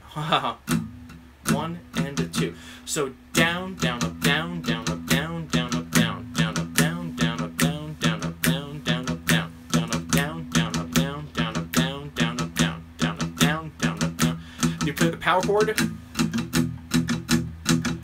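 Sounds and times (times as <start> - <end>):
acoustic guitar strumming: 0.6 - 18.0.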